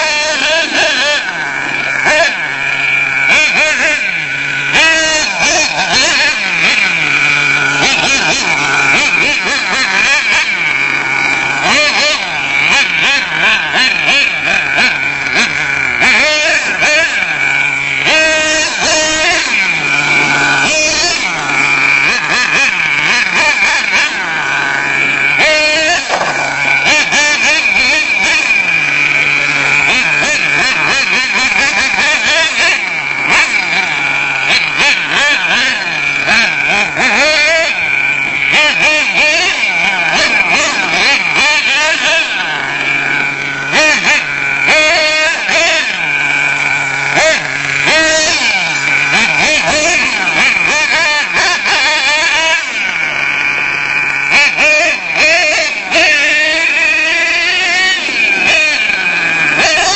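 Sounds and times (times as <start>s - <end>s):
small nitro engine revving: 0.0s - 59.9s.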